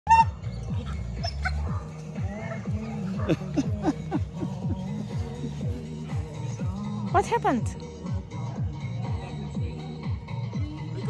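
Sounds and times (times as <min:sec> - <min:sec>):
background music with low beat: 0:00.1 - 0:11.0.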